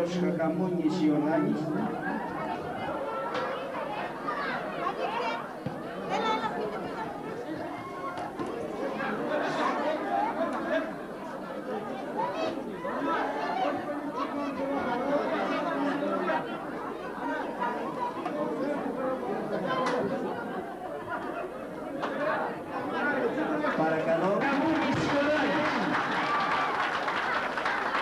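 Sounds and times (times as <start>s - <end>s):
crowd chattering: 0.0s - 28.0s.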